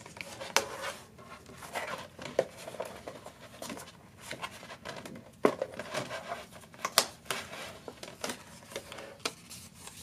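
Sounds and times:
plastic mat rubbing and crinkling: 0.0s - 10.0s.

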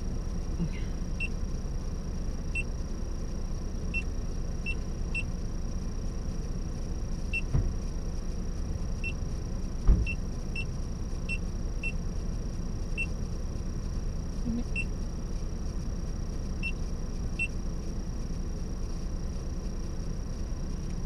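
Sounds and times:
car engine idling: 0.0s - 21.0s
car door thud: 7.5s - 7.8s, 9.8s - 10.2s.

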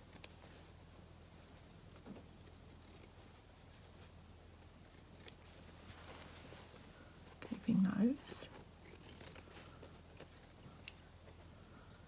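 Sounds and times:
scissors snipping fabric: 8.8s - 9.5s, 10.1s - 11.0s.

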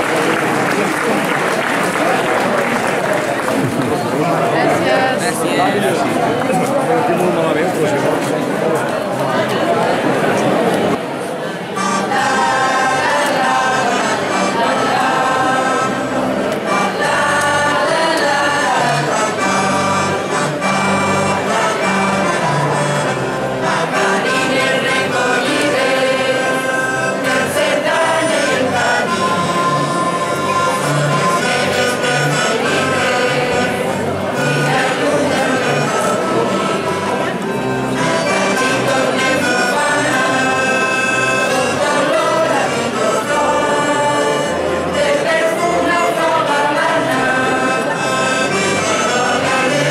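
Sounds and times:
accordion: 0.0s - 49.9s
saxophones: 11.6s - 49.9s
choir singing in unison: 11.8s - 49.9s.

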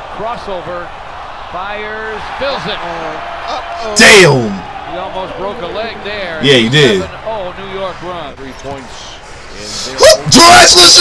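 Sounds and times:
basketball play on court: 0.0s - 9.4s
arena crowd noise: 0.0s - 11.0s
commentator talking: 3.8s - 4.6s, 5.3s - 7.3s, 8.8s - 11.0s.

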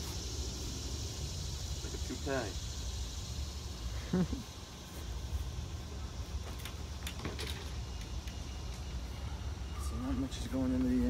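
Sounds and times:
grass catcher bag clicks and rattles: 6.4s - 8.8s.

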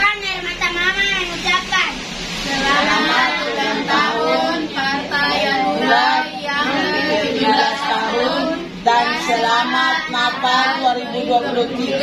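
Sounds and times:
children singing: 2.4s - 12.0s.

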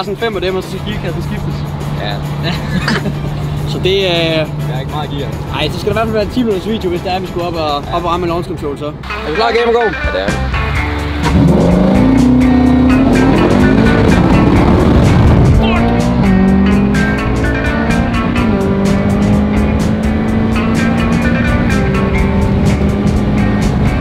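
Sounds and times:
sports car engine accelerating: 10.6s - 24.0s.

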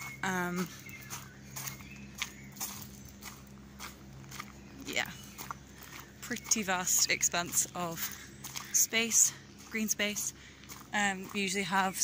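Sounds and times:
faint low hum: 0.0s - 12.0s
footsteps on dirt path: 0.0s - 12.0s.

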